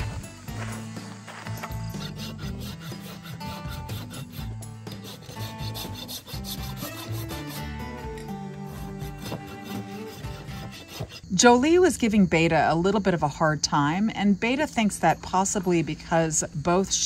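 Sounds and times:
hoof rasp scraping hoof: 0.0s - 11.7s.

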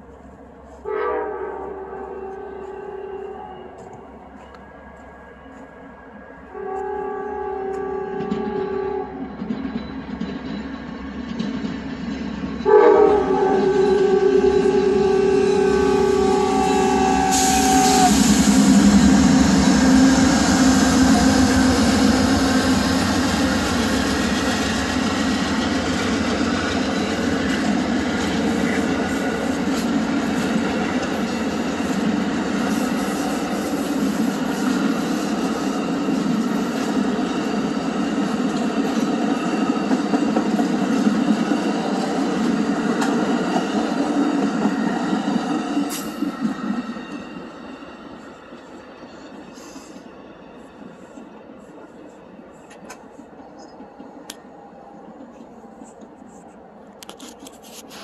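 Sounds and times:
train rushing past on rails: 0.0s - 58.0s
train horn: 0.8s - 4.6s, 6.4s - 9.2s, 12.6s - 23.6s.

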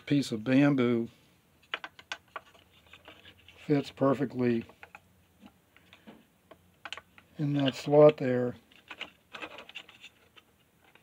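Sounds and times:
bamboo clicking and scratching on plastic: 1.6s - 4.0s, 4.6s - 11.0s.

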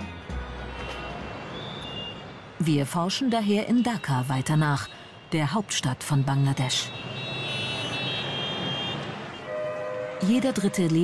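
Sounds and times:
engine and road noise: 0.0s - 11.0s
vehicle horn sounding: 6.9s - 10.8s.

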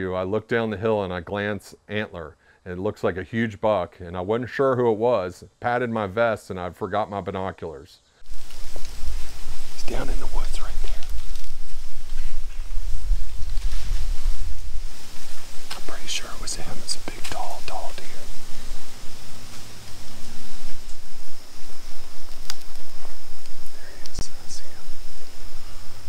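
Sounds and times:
low rumble on microphone: 8.2s - 26.0s
people whispering: 9.8s - 11.2s, 15.7s - 18.5s, 23.6s - 25.0s.

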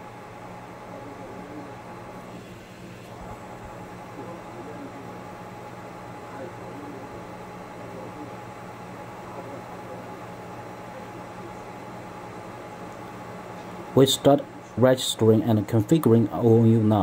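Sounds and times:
constant low hum: 0.0s - 17.0s.

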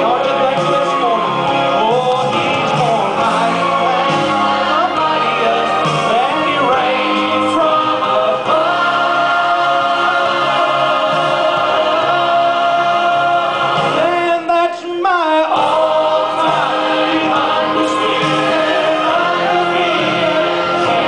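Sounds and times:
church choir singing: 0.0s - 14.2s, 15.3s - 21.0s
male soloist singing: 0.0s - 21.0s.

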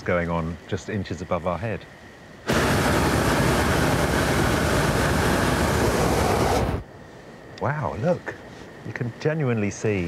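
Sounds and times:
propane burner roaring: 2.4s - 7.0s.

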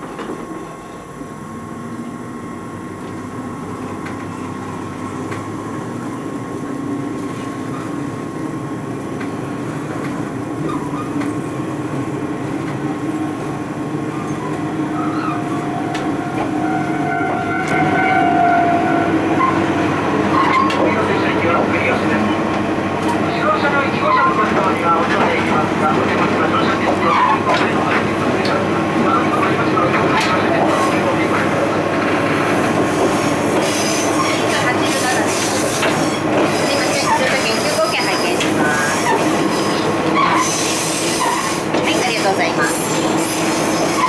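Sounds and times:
diesel railcar engines running: 0.0s - 44.0s.

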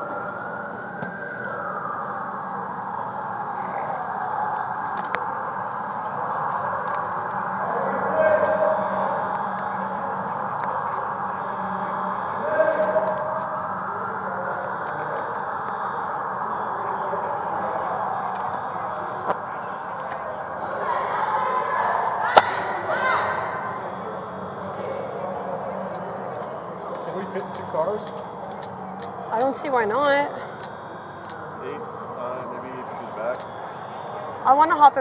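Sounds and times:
sirens wailing: 0.0s - 35.0s.

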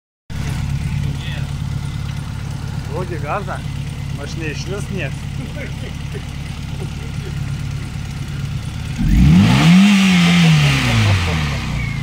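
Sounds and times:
car engine idling: 0.3s - 12.0s.

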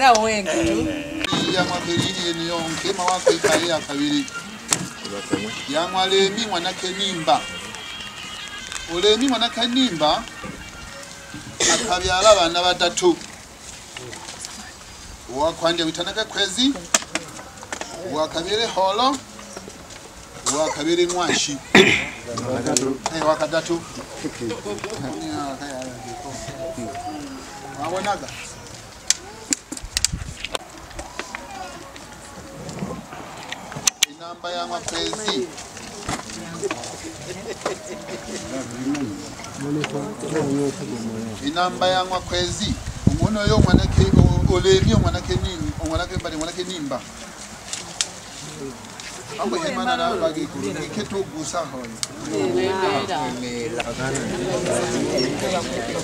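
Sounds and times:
people talking quietly: 0.0s - 56.0s
man speaking: 0.5s - 4.3s, 20.4s - 28.6s.

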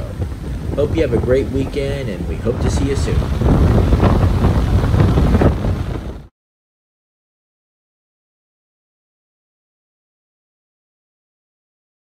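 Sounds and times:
choppy water: 0.0s - 6.3s
wind buffeting microphone: 0.0s - 6.3s.

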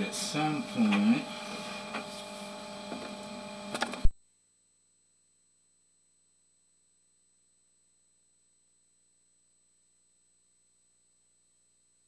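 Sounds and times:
electrical hum and hiss: 0.0s - 4.1s.

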